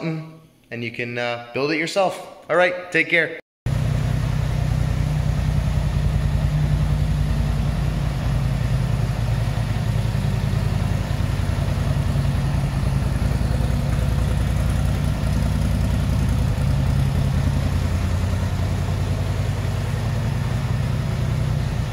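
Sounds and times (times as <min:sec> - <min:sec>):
atv engine idling: 0:03.7 - 0:21.9.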